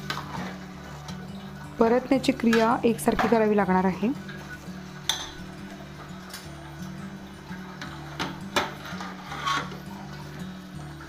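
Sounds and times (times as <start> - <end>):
background music: 0.0 - 11.0
spoon clinking against pot: 5.1 - 5.4
spoon stirring in metal pot: 7.7 - 10.0.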